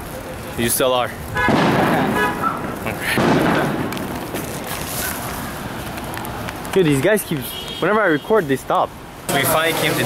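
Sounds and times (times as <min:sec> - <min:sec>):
fireworks explosions: 0:01.4 - 0:05.8.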